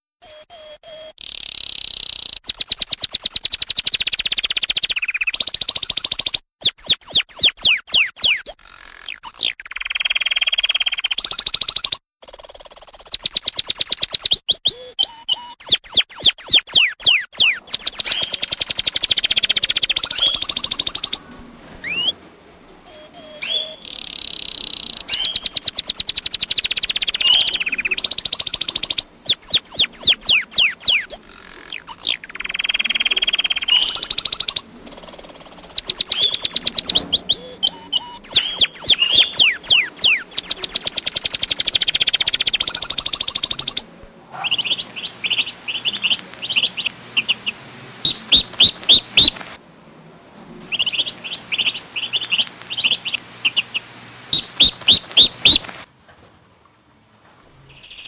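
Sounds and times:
canary singing: 0:00.2 - 0:49.6, 0:50.7 - 0:55.8, 0:57.7 - 0:58.0.

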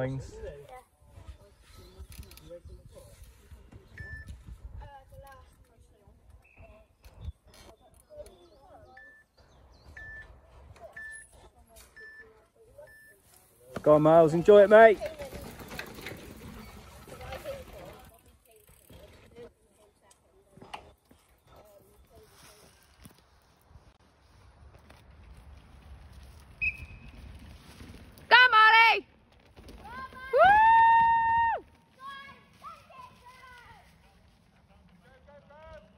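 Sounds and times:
electronic timer beeps: 0:03.9 - 0:04.4, 0:08.9 - 0:09.3, 0:09.9 - 0:13.2
birds chirping: 0:06.3 - 0:11.3
high-pitched whistle-like tone: 0:26.6 - 0:27.1.

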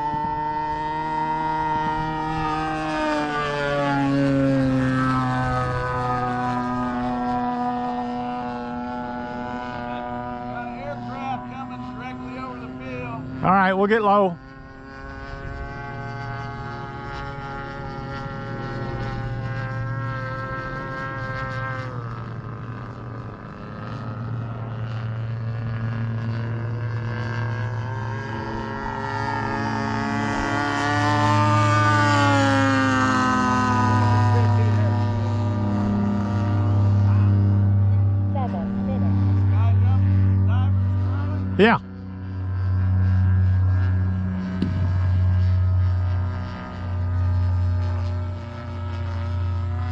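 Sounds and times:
propeller plane engine drone: 0:00.0 - 0:49.9.

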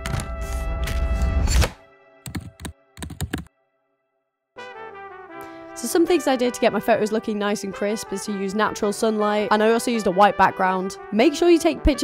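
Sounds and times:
sharp clicks of typing keys: 0:02.3 - 0:03.5.

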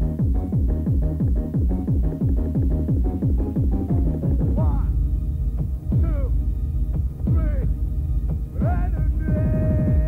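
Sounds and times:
kick drum: 0:00.0 - 0:04.9, 0:05.6 - 0:10.0
repeating synth riff: 0:00.0 - 0:10.0.

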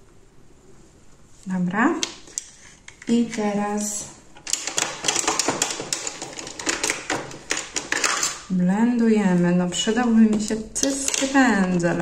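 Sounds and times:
cosmetic cases clicking and clattering: 0:04.4 - 0:08.5, 0:10.4 - 0:12.0.

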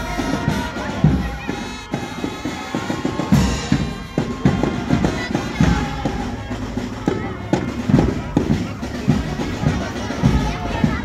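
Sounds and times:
crowd voices: 0:00.0 - 0:11.0
drums beating: 0:00.0 - 0:11.0
marching band playing: 0:00.0 - 0:11.0.

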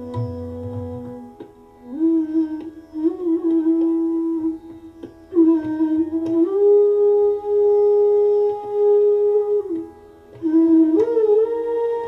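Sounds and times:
bansuri flute note sliding up: 0:00.0 - 0:12.0
tabla stroke: 0:00.0 - 0:12.0.

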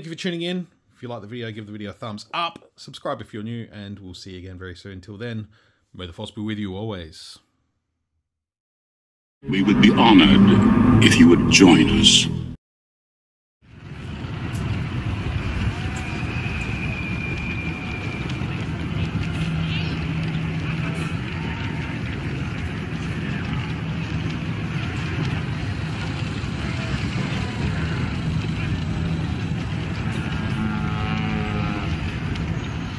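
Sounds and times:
indistinct voices: 0:09.4 - 0:12.6
steady rumble and hiss: 0:13.8 - 0:30.6.

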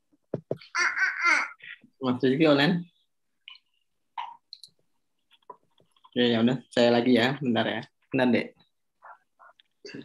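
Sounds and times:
young child laughing: 0:00.7 - 0:01.8.

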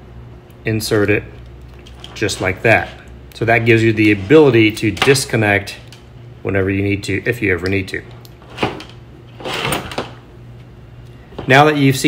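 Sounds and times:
wires rustling: 0:00.9 - 0:06.2, 0:07.6 - 0:11.7.

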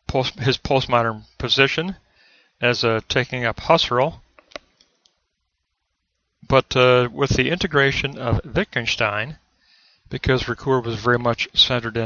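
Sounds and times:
man speaking: 0:00.0 - 0:02.0, 0:02.6 - 0:04.3, 0:06.5 - 0:09.4, 0:10.1 - 0:12.0.

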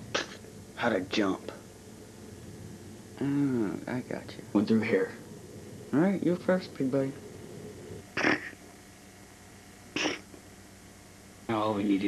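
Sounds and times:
tape hiss: 0:00.0 - 0:12.0.

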